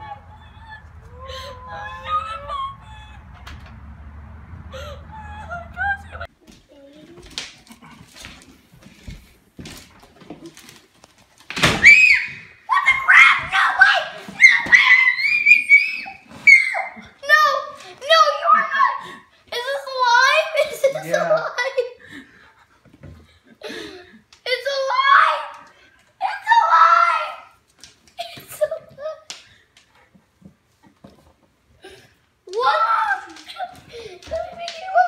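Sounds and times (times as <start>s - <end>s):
girl screaming with delight: 0.0s - 3.5s, 11.8s - 12.4s
faint voices: 0.0s - 3.8s, 4.6s - 7.2s
steady low rumble: 0.0s - 6.3s.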